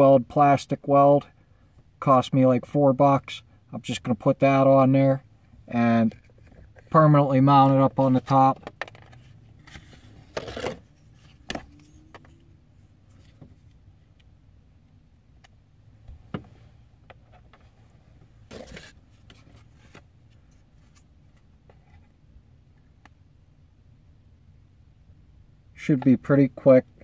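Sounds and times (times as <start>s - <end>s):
low steady hum: 0.0s - 27.0s.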